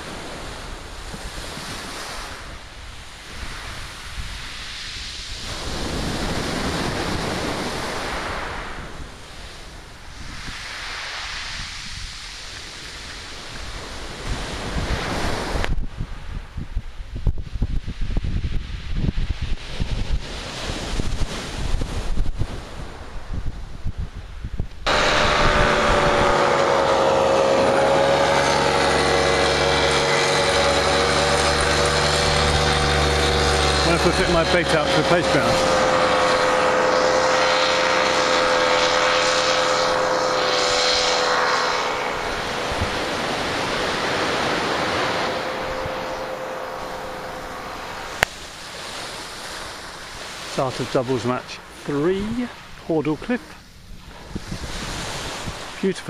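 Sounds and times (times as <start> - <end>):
waves washing on shingle: 0.0 - 16.2, 18.6 - 23.3, 24.8 - 56.0
wind on microphone: 0.0 - 56.0
propeller engine drone: 24.7 - 56.0.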